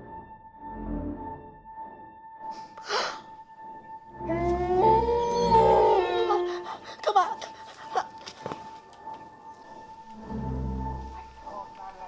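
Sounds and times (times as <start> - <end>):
long howling cry: 4.1 - 8.2.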